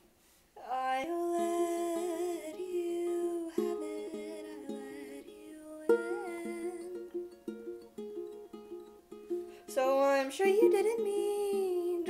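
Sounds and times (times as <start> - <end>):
woman humming a melody: 0.6 - 7.2, 9.7 - 12.0.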